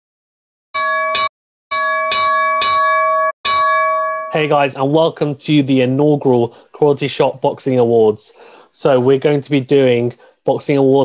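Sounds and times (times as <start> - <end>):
boxing ring bell dinging: 0.8 - 4.5.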